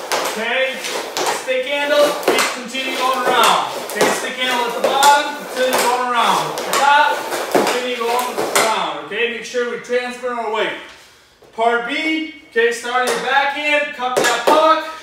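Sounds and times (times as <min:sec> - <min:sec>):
hockey stick and puck clacking: 0:00.0 - 0:08.9, 0:13.0 - 0:13.4, 0:14.1 - 0:14.8
man talking: 0:00.3 - 0:10.9, 0:11.5 - 0:15.0.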